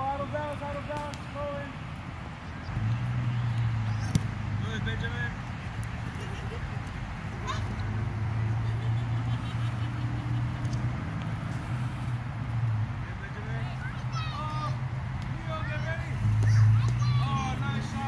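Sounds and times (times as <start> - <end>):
distant voices calling out: 12.8 - 18.0.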